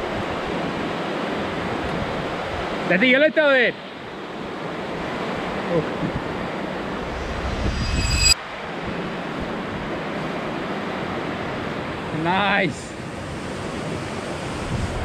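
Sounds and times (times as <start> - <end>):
low rumble: 6.7 - 8.4
wind buffeting microphone: 13.5 - 15.0.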